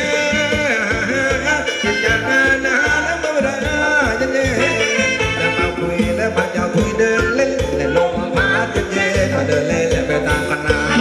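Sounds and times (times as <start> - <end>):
live band dance music: 0.0 - 11.0.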